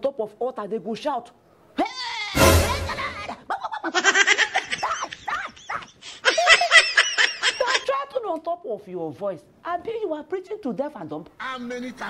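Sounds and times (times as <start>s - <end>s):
bursts of laughter: 2.4s - 7.8s.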